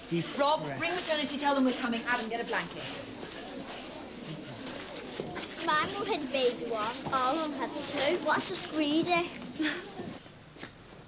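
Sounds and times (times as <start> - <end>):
room noise and movement: 0.0 - 10.8.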